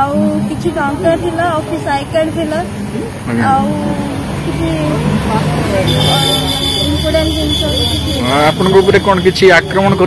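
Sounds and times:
street traffic: 0:00.0 - 0:10.0
woman talking: 0:03.4 - 0:08.2.

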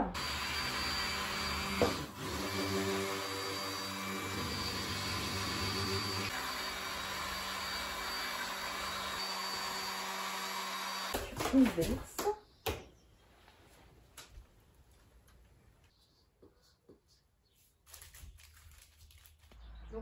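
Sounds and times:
stick blender running: 0:00.0 - 0:11.5.

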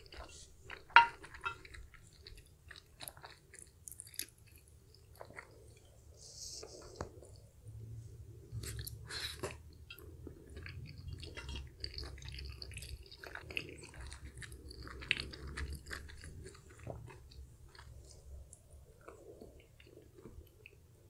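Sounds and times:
close-miked chewing: 0:00.0 - 0:21.0.

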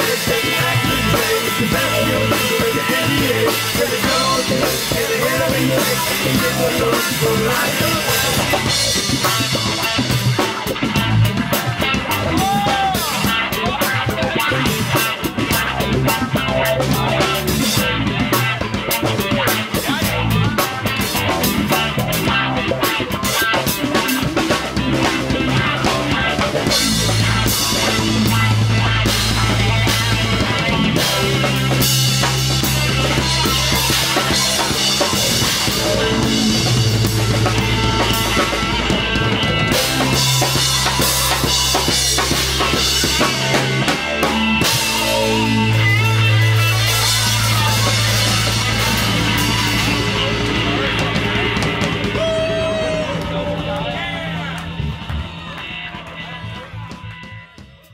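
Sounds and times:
long held bass notes: 0:00.0 - 0:57.8
busy drumming: 0:00.0 - 0:57.9
rock band playing: 0:00.0 - 0:57.9.

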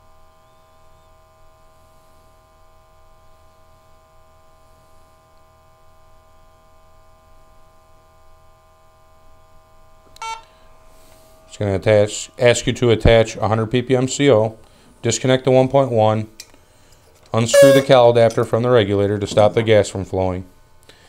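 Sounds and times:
faint steady hum: 0:00.0 - 0:21.0
short electronic beep: 0:10.2 - 0:10.5, 0:17.5 - 0:18.0.

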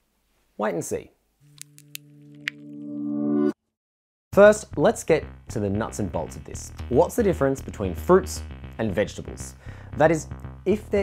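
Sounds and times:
held low chord: 0:05.2 - 0:11.0.

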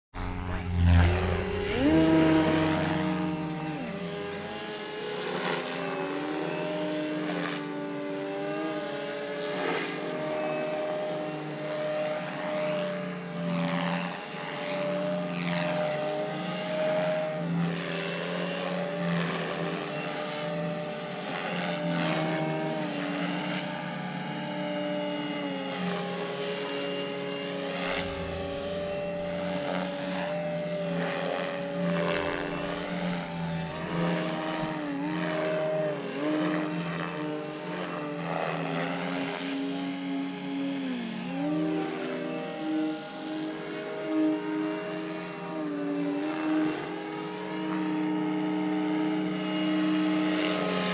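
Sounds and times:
model plane motor buzzing: 0:00.2 - 0:50.9.

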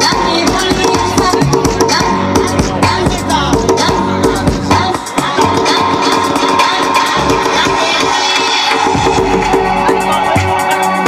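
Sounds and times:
dj music through speakers: 0:00.0 - 0:11.0.

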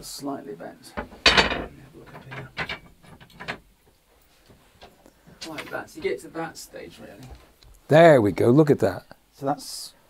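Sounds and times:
wooden knocks and clicks: 0:01.0 - 0:06.1.

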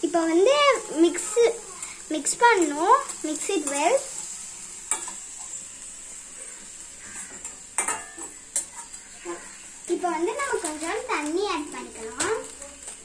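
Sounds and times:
vegetables sizzling in oil: 0:00.0 - 0:13.0
spatula scraping and tapping pan: 0:00.5 - 0:05.6, 0:06.4 - 0:09.6.

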